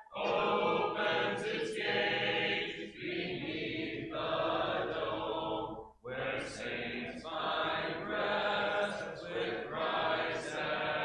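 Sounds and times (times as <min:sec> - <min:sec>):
congregation singing a hymn: 0:00.0 - 0:11.0.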